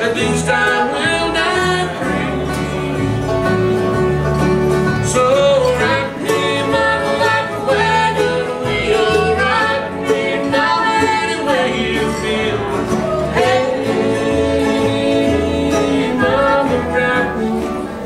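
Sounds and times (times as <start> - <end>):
voices singing: 0.0 - 3.9, 4.9 - 18.0
acoustic guitars: 0.0 - 18.0
fiddle: 0.0 - 18.0
upright bass: 0.0 - 18.0.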